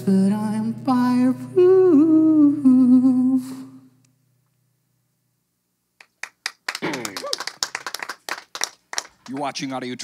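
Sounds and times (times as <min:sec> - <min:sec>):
people clapping: 0:06.0 - 0:10.0.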